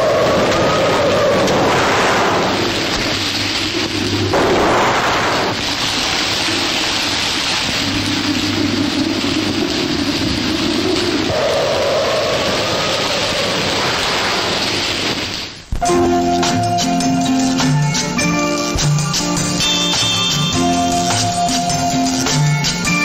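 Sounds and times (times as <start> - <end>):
low thunder rumbling: 0.0 - 16.8
heavy rain hiss: 0.0 - 23.0.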